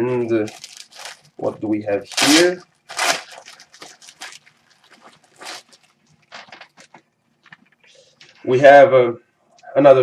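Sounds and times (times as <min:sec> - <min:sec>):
plastic bag crinkling: 0:00.3 - 0:07.8.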